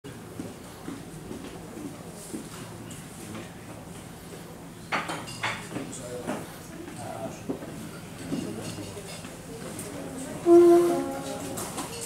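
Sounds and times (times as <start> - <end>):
faint indistinct murmuring: 5.6 - 12.0.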